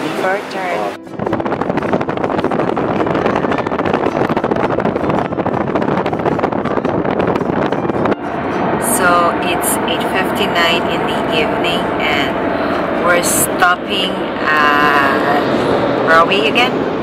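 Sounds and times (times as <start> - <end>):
wind and road noise: 0.0 - 17.0.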